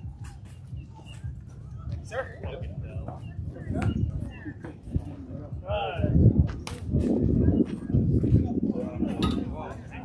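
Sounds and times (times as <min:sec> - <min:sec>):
wind rumble on microphone: 0:00.0 - 0:10.0.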